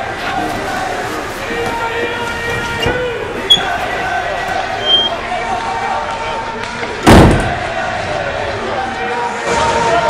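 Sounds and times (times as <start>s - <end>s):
door slamming shut: 7.0s - 7.6s.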